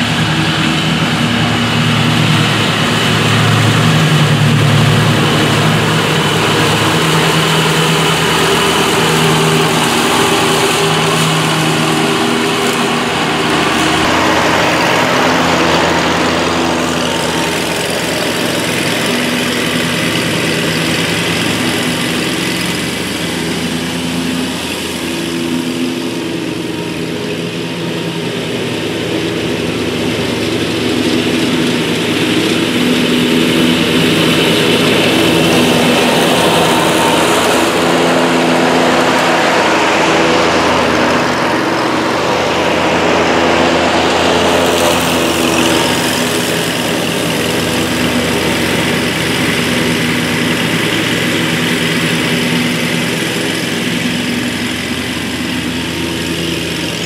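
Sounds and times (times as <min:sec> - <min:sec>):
riding mower cutting grass: 0:00.0 - 0:57.0.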